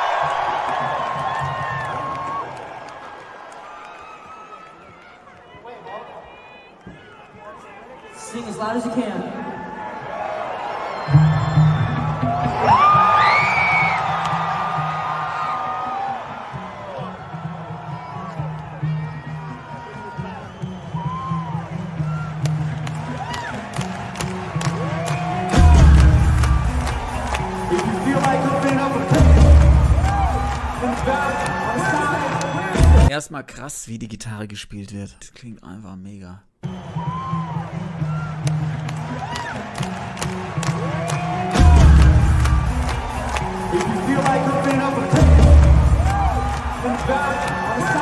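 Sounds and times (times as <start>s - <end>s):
crowd cheering and whooping: 0.0s - 8.0s, 9.3s - 33.1s, 36.6s - 48.0s.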